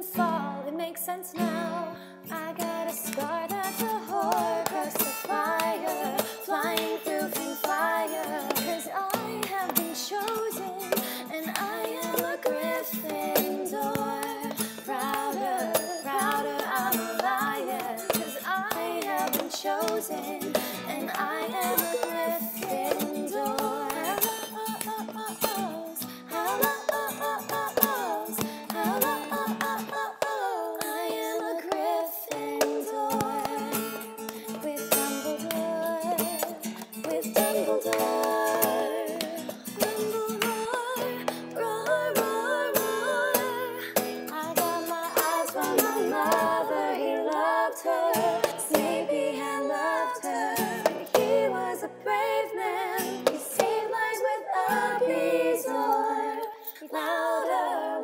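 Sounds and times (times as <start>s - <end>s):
strummed acoustic guitar: 0.0s - 56.8s
women singing in harmony: 0.0s - 58.0s.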